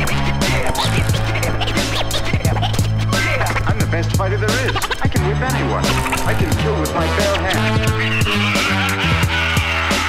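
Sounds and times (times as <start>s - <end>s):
hip-hop beat with bass: 0.0s - 10.0s
turntable scratches: 0.0s - 10.0s.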